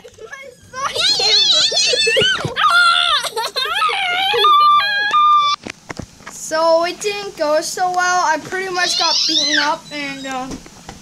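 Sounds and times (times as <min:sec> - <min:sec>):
child shrieking and squealing: 0:00.2 - 0:05.6, 0:08.8 - 0:10.3.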